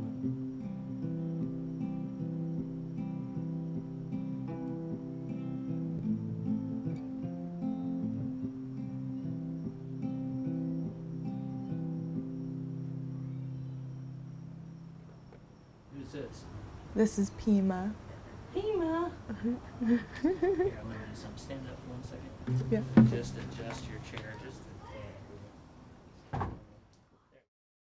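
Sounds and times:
acoustic guitar chord ringing: 0.0s - 15.0s, 22.5s - 24.4s
crickets trilling: 0.0s - 25.0s
chair thump: 22.5s - 23.9s.

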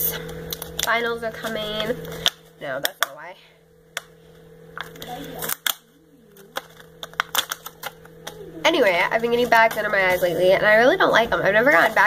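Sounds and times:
plastic packaging clicks and taps: 6.5s - 8.4s.

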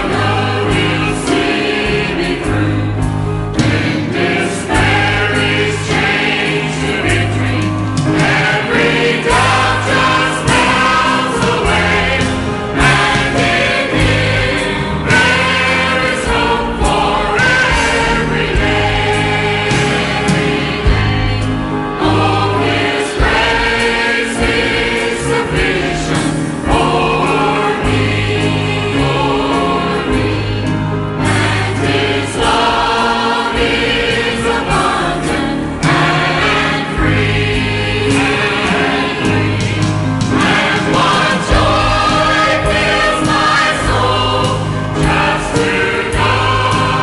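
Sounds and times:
choir singing a hymn: 0.0s - 47.0s
instrumental accompaniment with bass notes: 0.0s - 47.0s.

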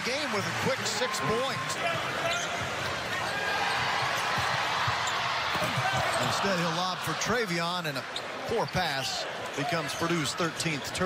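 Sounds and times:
arena crowd noise: 0.0s - 11.0s
sneaker squeaks: 1.8s - 6.5s.

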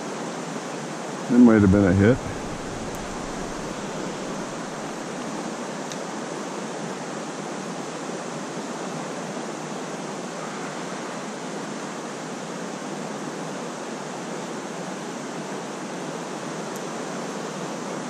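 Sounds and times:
river water rushing: 1.3s - 5.5s.

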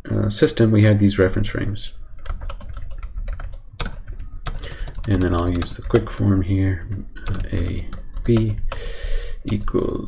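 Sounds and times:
computer keyboard typing: 2.1s - 9.8s.

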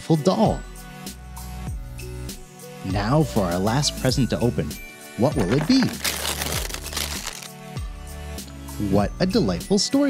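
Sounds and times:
background music with steady beat: 0.0s - 10.0s
wrapping paper tearing and crinkling: 5.5s - 7.6s.

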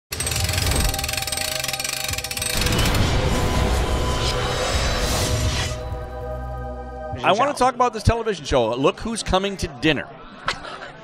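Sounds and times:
music: 0.1s - 9.0s
heavy door low rumble: 2.5s - 7.2s.

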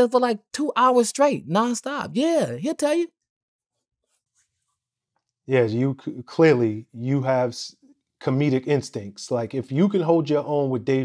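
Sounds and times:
man's voice: 5.5s - 11.0s.

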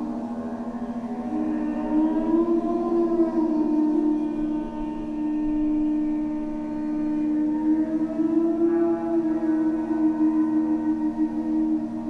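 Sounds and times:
ambient drone music: 0.0s - 12.0s
siren-like tone: 0.0s - 12.0s.

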